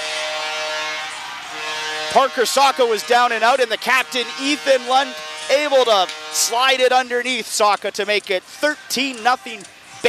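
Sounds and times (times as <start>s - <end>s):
crowd cheering: 0.0s - 5.4s
goal horn: 0.0s - 7.6s.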